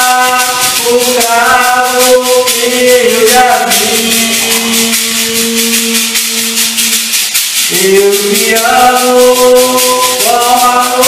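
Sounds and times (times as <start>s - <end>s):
maraca shaking rhythm: 0.0s - 11.0s
person singing: 0.0s - 11.0s.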